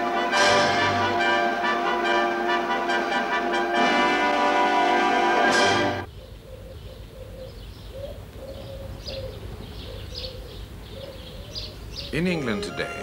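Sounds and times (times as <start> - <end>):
pigeons cooing: 6.0 - 13.0
small birds chirping: 6.1 - 13.0.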